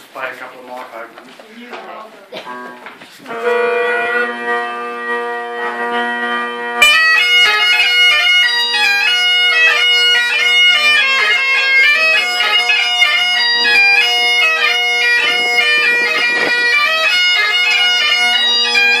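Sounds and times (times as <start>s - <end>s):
bagpipes playing: 2.5s - 19.0s.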